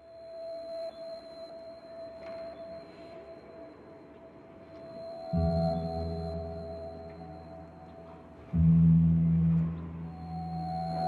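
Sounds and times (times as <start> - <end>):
sustained electronic tone: 0.3 - 11.0.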